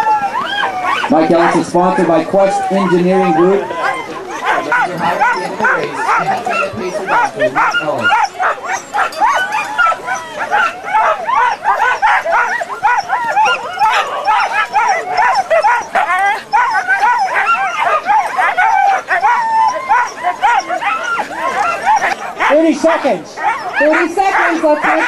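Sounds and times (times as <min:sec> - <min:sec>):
dogs barking and yipping: 0:00.0 - 0:25.0.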